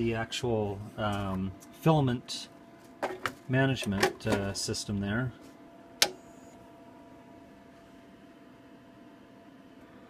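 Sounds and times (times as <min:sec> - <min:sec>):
faint printer hum: 0:00.0 - 0:10.0.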